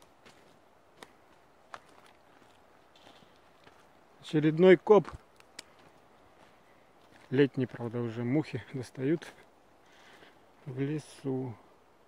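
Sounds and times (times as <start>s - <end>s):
footsteps on dirt: 0.0s - 8.1s.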